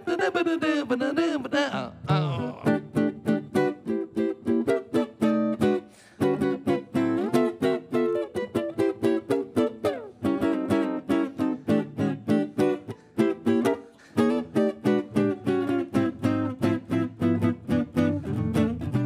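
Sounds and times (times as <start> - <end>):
jazz guitar chords: 0.0 - 19.0.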